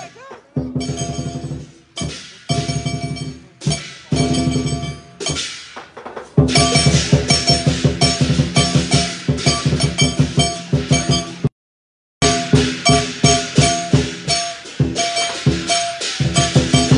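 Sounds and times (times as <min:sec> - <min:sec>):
drum with cymbals and gong: 0:00.0 - 0:11.5, 0:12.2 - 0:16.9.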